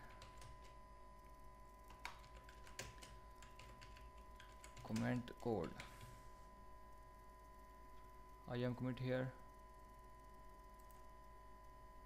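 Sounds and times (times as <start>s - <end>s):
typing on computer keyboard: 0.0s - 0.8s, 1.9s - 6.1s.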